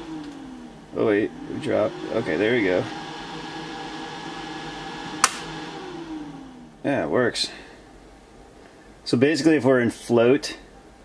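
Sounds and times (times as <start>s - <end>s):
computer fan humming: 0.0s - 8.5s.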